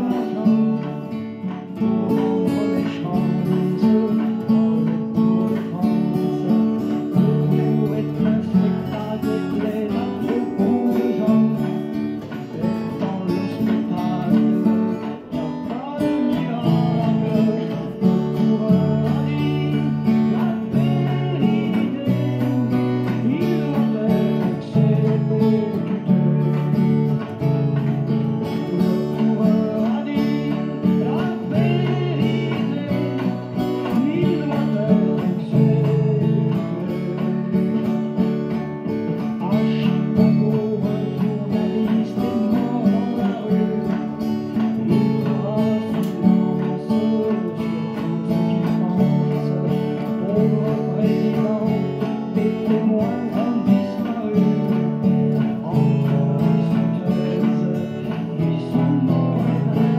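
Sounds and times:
acoustic guitar strummed chords: 0.0s - 59.9s.

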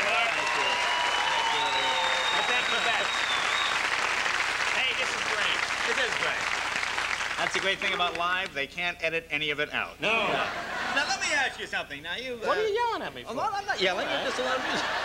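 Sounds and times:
audience applauding and cheering: 0.0s - 8.5s.

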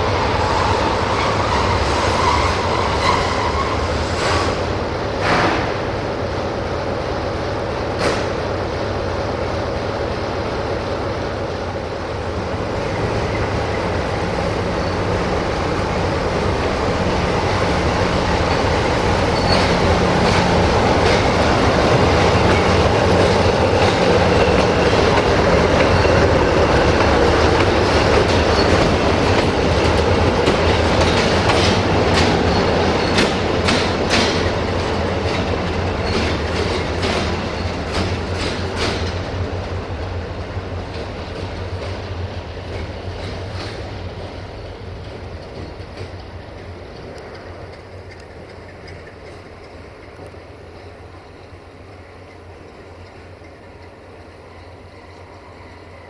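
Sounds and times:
diesel locomotive engine running: 0.0s - 56.0s
wheels clicking over rail joints: 17.7s - 54.6s.

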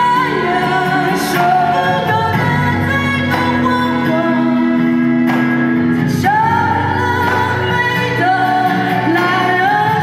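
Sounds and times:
live folk-rock band playing: 0.0s - 10.0s.

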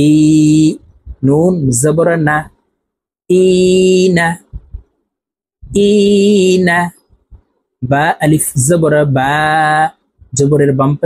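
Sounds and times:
man chanting drawn-out syllable: 0.0s - 2.6s, 5.6s - 7.0s.

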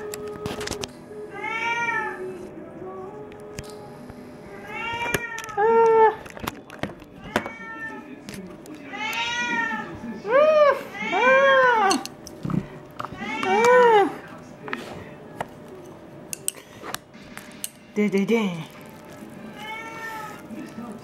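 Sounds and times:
cat meowing: 7.2s - 8.1s, 19.5s - 20.4s.

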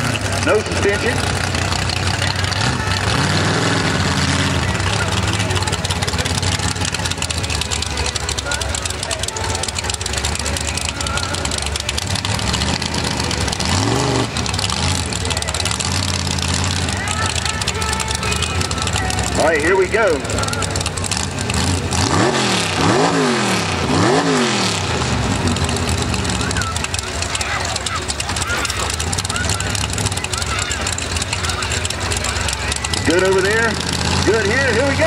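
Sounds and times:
noisy background: 0.0s - 35.0s
truck engine idling and revving: 0.0s - 35.0s.

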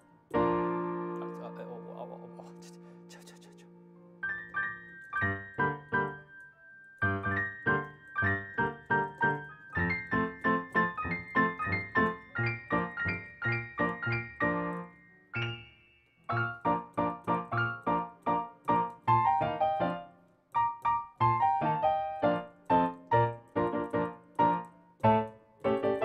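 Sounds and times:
solo piano playing: 0.0s - 26.0s.

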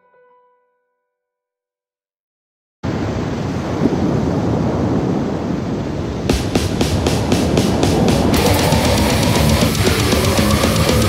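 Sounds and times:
distorted metal guitar: 6.3s - 11.0s
steady drum hits: 6.3s - 11.0s.

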